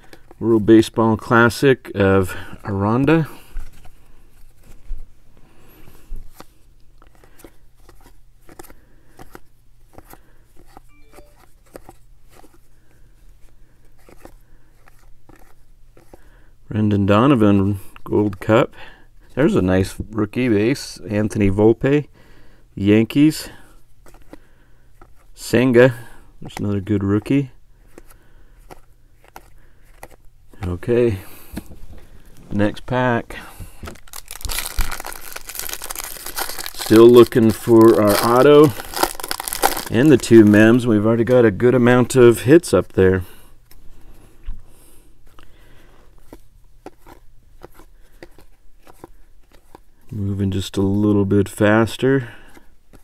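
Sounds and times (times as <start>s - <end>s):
low steady hum: 0.0s - 52.9s
cards flipping with clicks: 6.2s - 12.6s, 13.9s - 16.2s, 27.9s - 30.7s, 46.2s - 49.9s.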